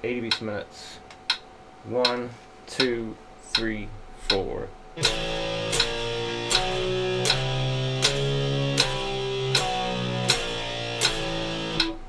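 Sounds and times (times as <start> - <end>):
metronome clicks: 2.8 - 4.4, 5.0 - 12.0
electric guitar power chords: 5.0 - 12.0.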